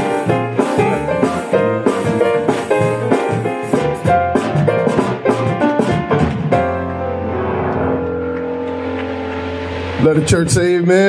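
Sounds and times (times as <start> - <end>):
organ sustained chord: 6.7 - 11.0.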